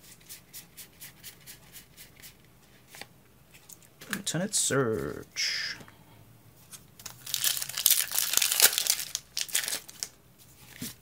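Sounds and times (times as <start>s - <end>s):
foil wrapper tearing and crinkling: 7.0s - 10.2s.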